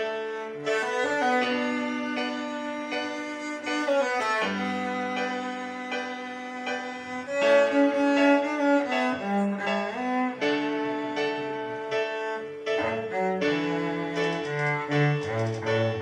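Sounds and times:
cello bowed slow melody: 0.0 - 16.0.

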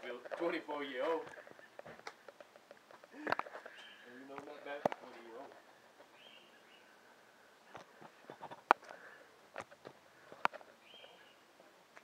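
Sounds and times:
faint bird calls: 3.1 - 4.3, 6.1 - 7.2, 10.8 - 11.5.

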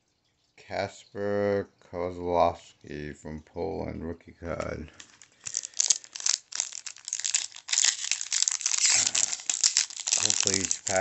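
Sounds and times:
foil wrapper crinkling: 4.9 - 11.0.

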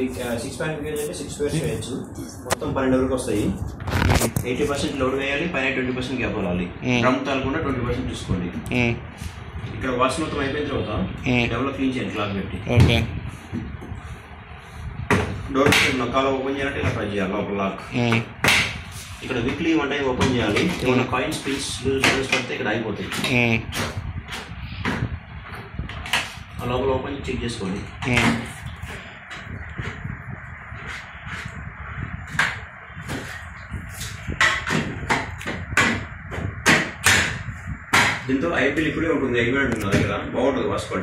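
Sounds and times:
man talking: 0.0 - 3.7, 4.4 - 9.1, 9.8 - 13.2, 15.6 - 18.3, 19.4 - 23.7, 26.6 - 28.5
person talking: 6.7 - 7.3, 8.5 - 9.1, 11.2 - 11.6, 12.6 - 13.2, 17.7 - 18.3, 20.5 - 22.2, 23.0 - 23.7, 27.6 - 28.5.

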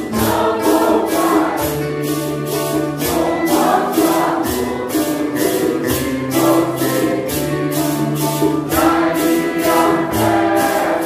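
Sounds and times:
congregation singing a hymn: 0.0 - 11.0
maracas shaking: 0.0 - 11.0.

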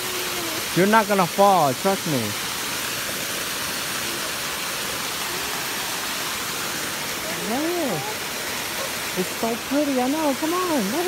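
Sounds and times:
creek water flowing over rocks: 0.0 - 11.0.

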